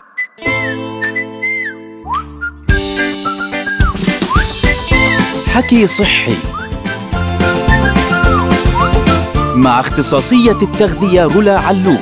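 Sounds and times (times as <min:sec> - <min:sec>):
whistled tune: 0:00.0 - 0:12.0.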